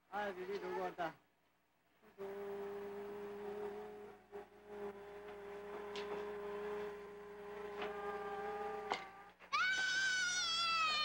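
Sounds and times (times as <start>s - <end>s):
child's high-pitched squeal: 9.5s - 11.0s.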